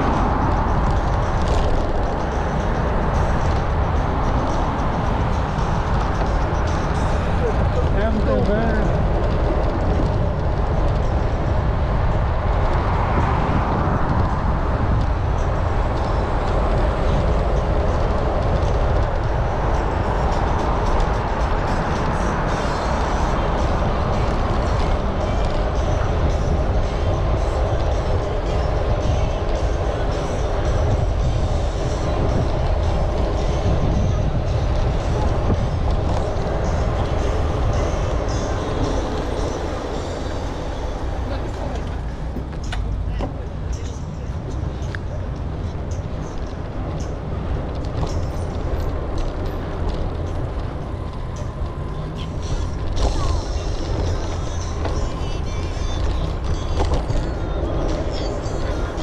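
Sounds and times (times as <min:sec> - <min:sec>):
bicycle road rumble: 0:00.0 - 0:59.0
wind rushing over microphone: 0:00.0 - 0:59.0.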